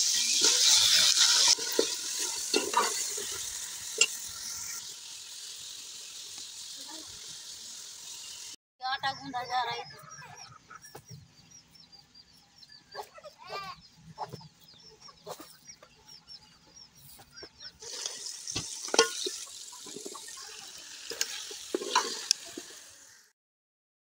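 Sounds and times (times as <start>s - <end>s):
food sizzling in a metal pot: 0.0s - 9.6s, 17.6s - 23.4s
hen clucking: 8.8s - 11.2s, 12.9s - 16.2s
spoon clinking against pot: 18.9s - 19.4s.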